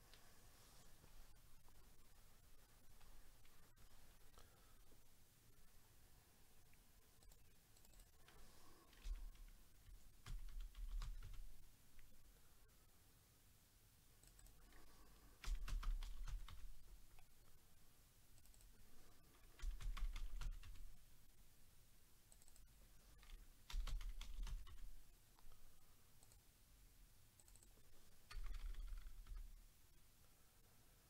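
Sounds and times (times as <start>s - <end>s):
computer keyboard typing: 7.2s - 11.6s, 14.2s - 17.3s, 18.4s - 21.0s, 22.3s - 25.5s, 27.4s - 29.6s.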